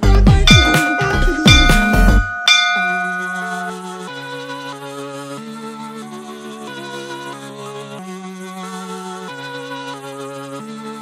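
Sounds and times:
beat-driven music with kick drums: 0.0 - 3.7
bell-like chime: 0.5 - 4.2
soft sustained synth tones: 0.5 - 4.2.

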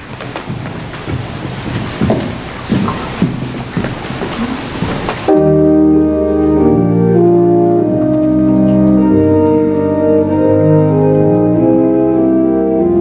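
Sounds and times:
rustling and shuffling: 0.0 - 10.4
church organ playing chords: 5.3 - 13.0.

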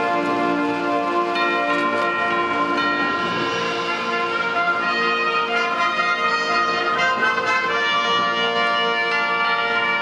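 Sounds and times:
orchestral music with brass chords: 0.0 - 10.0.

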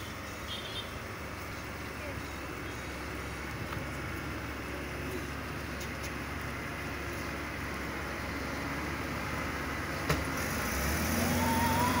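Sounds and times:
car engine pulling away: 2.9 - 12.0.

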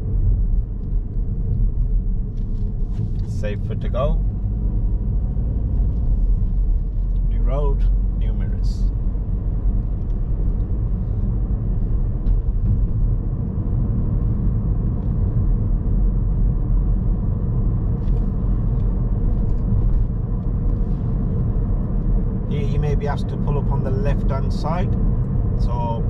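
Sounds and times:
car engine and tyres rumbling: 0.0 - 26.0.

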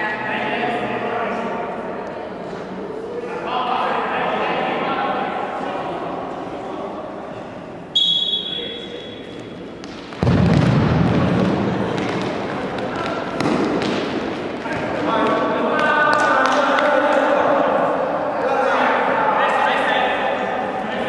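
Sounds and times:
referee's whistle blast: 7.9 - 9.4
ball thudding on hard court: 9.8 - 14.9.

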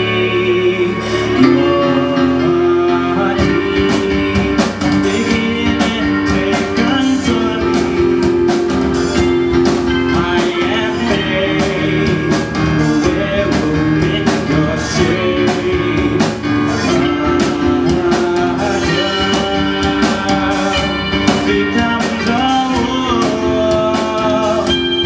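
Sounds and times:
drum kit steady beat: 0.0 - 25.0
electric guitars: 0.0 - 25.0
keyboard: 0.0 - 25.0.

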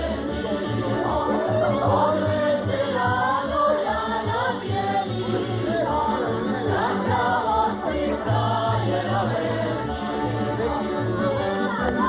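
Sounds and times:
group singing folk song: 0.0 - 12.0.

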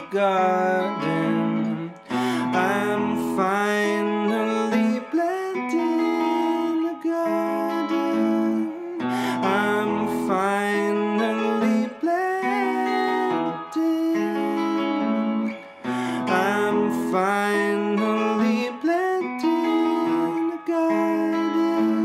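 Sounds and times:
electric guitar chords and melody: 0.0 - 22.0.

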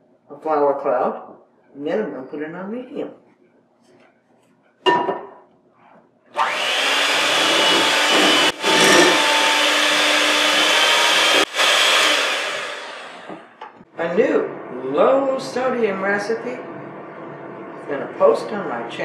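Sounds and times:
electric hand mixer running: 6.4 - 13.6.

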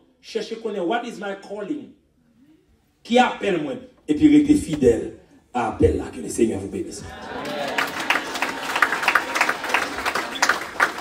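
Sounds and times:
congregation clapping: 7.4 - 11.0.

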